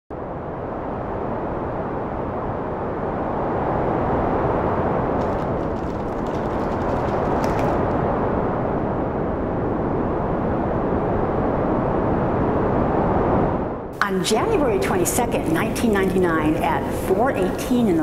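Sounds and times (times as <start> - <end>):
rushing storm wind: 0.1 - 18.0.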